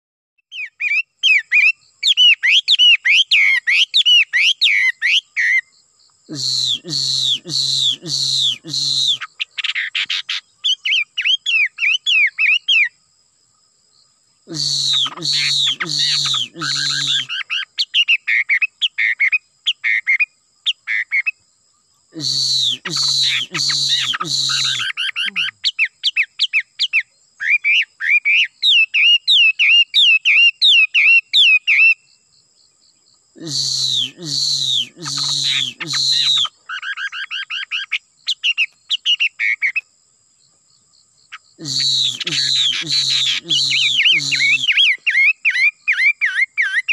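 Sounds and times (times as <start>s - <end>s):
songbird singing: 0.5s - 46.9s.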